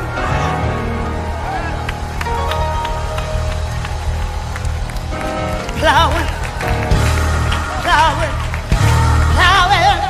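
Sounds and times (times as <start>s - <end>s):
bass line: 0.0s - 10.0s
keyboard chords: 0.0s - 10.0s
drum and cymbal hits: 6.7s - 10.0s.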